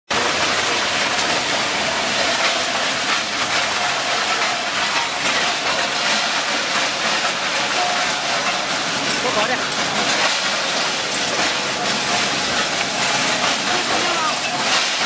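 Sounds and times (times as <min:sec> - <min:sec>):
metal shredder grinding: 0:00.1 - 0:15.0
metal pieces clattering: 0:00.2 - 0:15.0.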